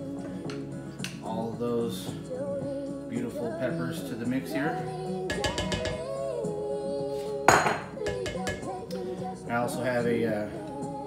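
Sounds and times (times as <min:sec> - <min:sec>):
background music with held notes: 0:00.0 - 0:11.0
spoon clanking on metal bowl: 0:05.3 - 0:06.2, 0:07.5 - 0:08.8.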